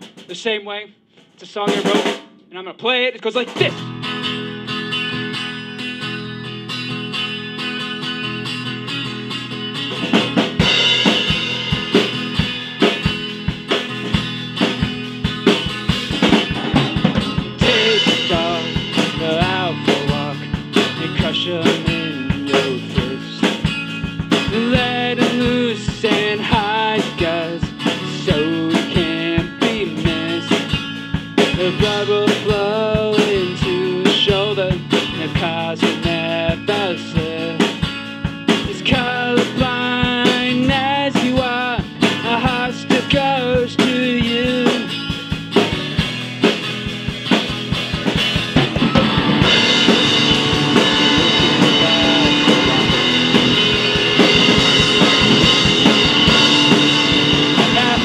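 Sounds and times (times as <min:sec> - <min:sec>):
drum kit beat: 0:00.0 - 0:02.7, 0:03.3 - 0:58.0
bass guitar: 0:03.4 - 0:58.0
electric guitar chords: 0:03.7 - 0:58.0.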